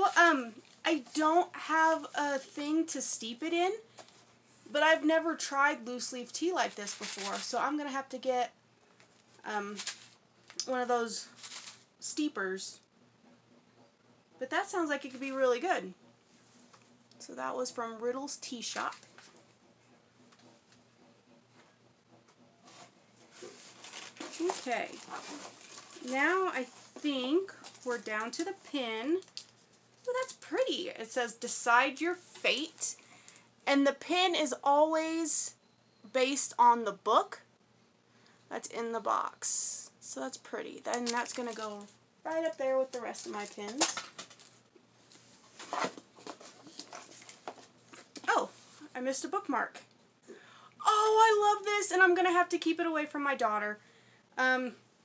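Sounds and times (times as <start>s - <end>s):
packing material rustling: 6.6s - 7.6s, 9.1s - 10.6s, 11.2s - 11.9s, 23.2s - 29.8s, 40.9s - 48.8s.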